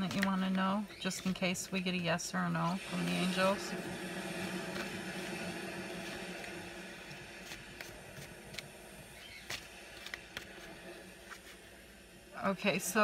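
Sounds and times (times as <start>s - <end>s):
low steady hiss: 0.0s - 13.0s
cards being shuffled: 9.4s - 11.6s.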